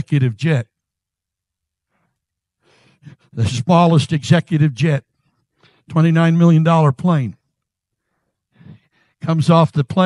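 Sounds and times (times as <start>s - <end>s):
faint breath: 1.9s - 3.4s, 5.2s - 5.9s, 7.9s - 9.2s.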